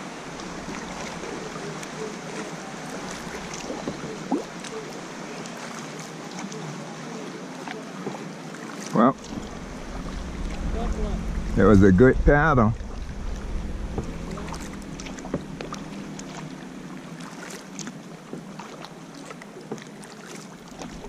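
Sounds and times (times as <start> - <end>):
wind rumble on microphone: 0.0 - 5.2, 9.2 - 18.5, 20.7 - 21.0
paddle splashing water: 0.0 - 11.5, 12.8 - 21.0
water lapping at hull: 0.0 - 21.0.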